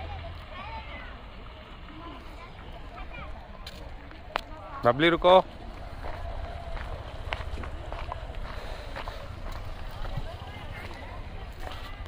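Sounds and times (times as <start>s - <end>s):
footsteps on stone: 2.6s - 12.0s.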